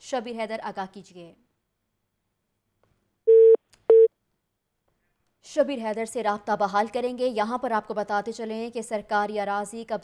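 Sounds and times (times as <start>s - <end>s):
telephone line beeps: 3.3s - 4.1s.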